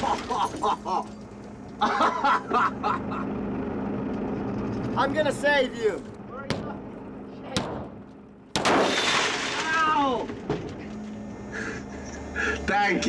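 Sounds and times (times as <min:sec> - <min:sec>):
loud crash: 0:08.6 - 0:10.8.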